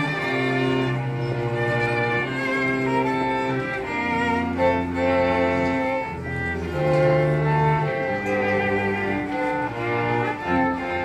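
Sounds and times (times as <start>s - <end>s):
string quartet playing: 0.0s - 11.0s.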